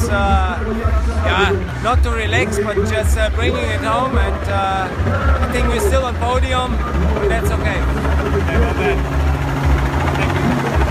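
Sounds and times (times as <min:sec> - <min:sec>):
loud low pulsing rumble: 0:00.0 - 0:10.9
voices talking: 0:00.0 - 0:10.9.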